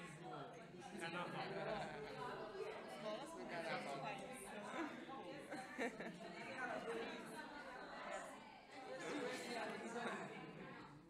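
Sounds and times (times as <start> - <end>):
young people chattering: 0.0 - 11.0.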